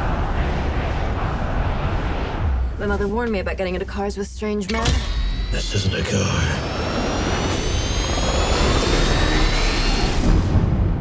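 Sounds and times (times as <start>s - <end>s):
heavy low rumble: 0.0s - 11.0s
jet turbine whine: 4.9s - 11.0s.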